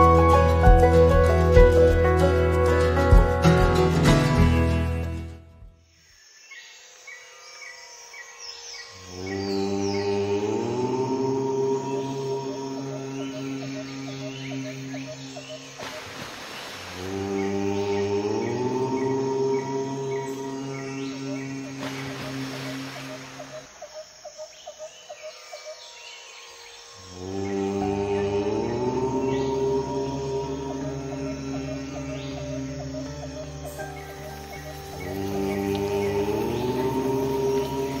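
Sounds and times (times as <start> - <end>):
nature ambience hiss: 0.0 - 5.2, 5.8 - 38.0
low chanted om drone: 8.8 - 15.6, 17.0 - 22.5, 25.9 - 38.0.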